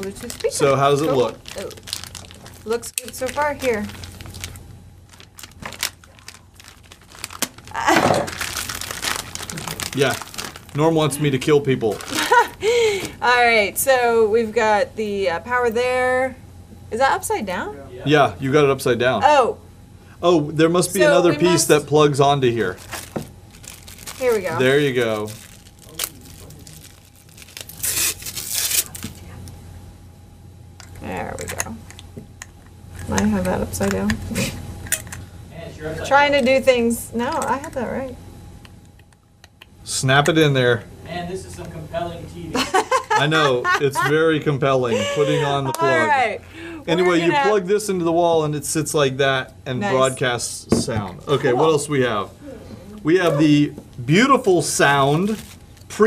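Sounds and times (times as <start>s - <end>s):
packaging crinkling: 0.0s - 12.6s, 22.6s - 29.3s, 54.8s - 56.0s.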